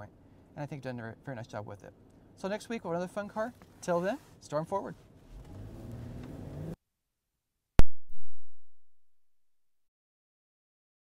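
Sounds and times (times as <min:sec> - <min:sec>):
car engine pulling away: 0:05.2 - 0:06.8.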